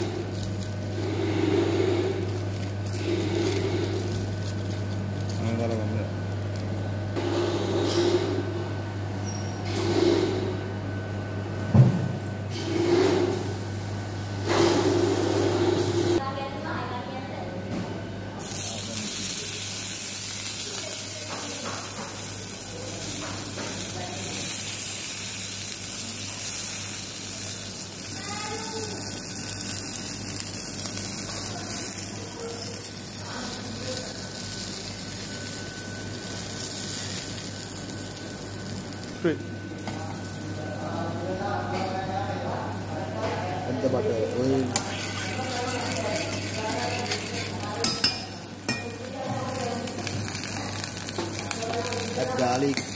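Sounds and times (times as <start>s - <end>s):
aluminium foil rustling: 0.0s - 1.2s, 1.9s - 6.8s, 18.4s - 39.4s, 42.2s - 47.8s, 48.9s - 52.9s
meat sizzling on a griddle: 0.0s - 5.6s, 18.4s - 52.9s.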